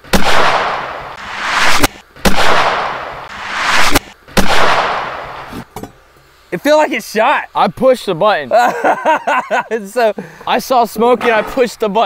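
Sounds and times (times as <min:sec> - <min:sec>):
pistol shot bang: 0:00.1 - 0:05.5
reversed gunshot swell: 0:00.1 - 0:05.5.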